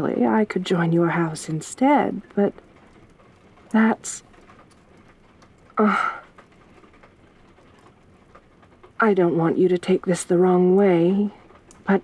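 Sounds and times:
faint rain patter: 0.0 - 12.0.

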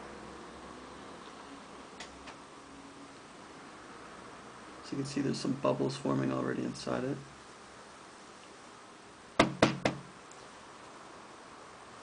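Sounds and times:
sharp knocks with hollow ring: 9.4 - 10.1.

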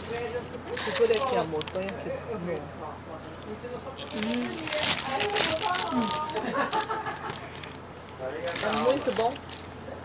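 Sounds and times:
paper wrapper crinkling: 0.0 - 2.0, 3.4 - 9.8
indistinct talking: 0.0 - 10.0.

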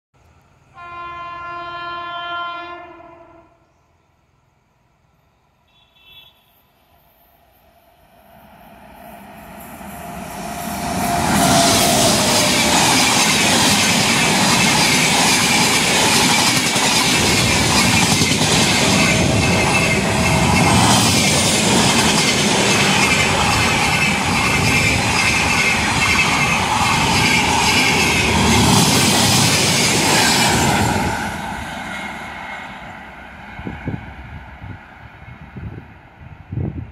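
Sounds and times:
train horn: 0.7 - 3.7, 5.7 - 6.7, 10.8 - 12.9
train coaches rolling past: 6.6 - 36.9.

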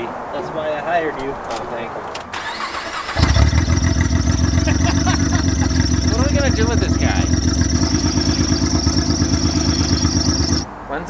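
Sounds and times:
car engine idling: 2.3 - 10.6.

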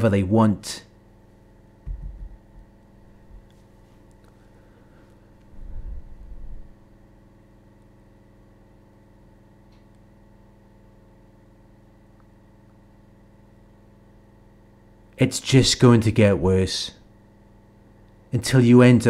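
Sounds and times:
low hum of held tones: 0.0 - 19.0
deep rumble: 1.9 - 2.6, 5.5 - 6.8.

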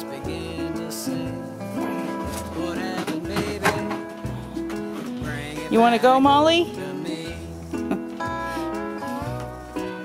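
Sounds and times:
acoustic guitar: 0.0 - 10.0
plucked bass line: 0.0 - 10.0.

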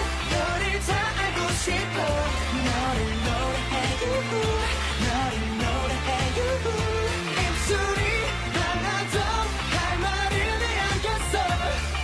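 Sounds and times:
heavy bass beat: 0.0 - 12.0
men singing pop song: 0.0 - 12.0.

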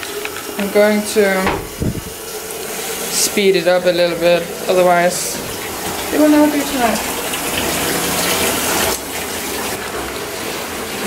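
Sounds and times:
tap running into bathtub: 0.2 - 9.8.

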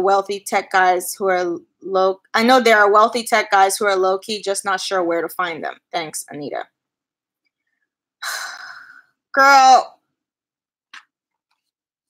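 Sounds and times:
woman's breathy sigh: 8.2 - 9.1.

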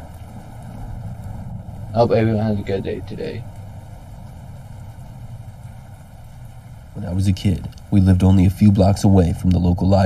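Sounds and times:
low rumble: 0.0 - 10.0
rainfall: 0.0 - 10.0.

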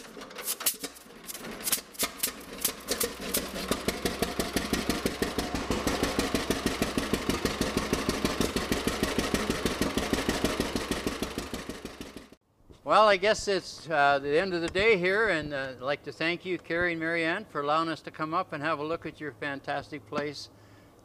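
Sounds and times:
tractor engine popping: 0.0 - 12.4.

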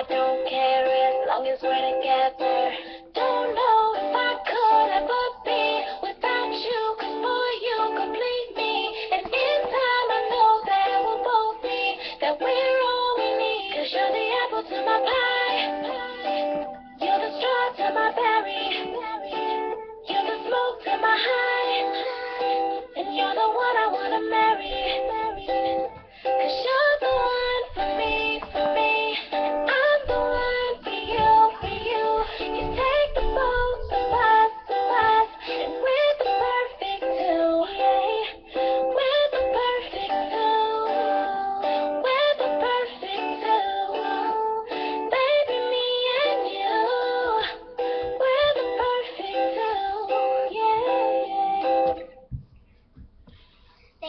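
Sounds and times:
person singing wordless melody: 0.0 - 52.2
strummed guitar: 0.0 - 52.2.

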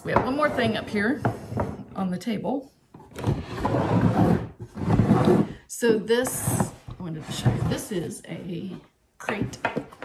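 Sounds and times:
wooden crate scraping on table: 3.0 - 5.6, 6.2 - 8.1.

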